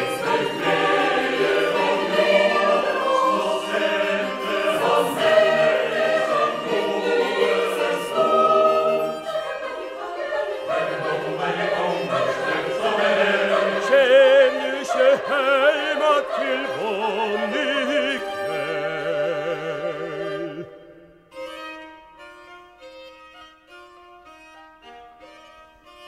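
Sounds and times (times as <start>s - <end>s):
chamber choir singing: 0.0s - 21.2s.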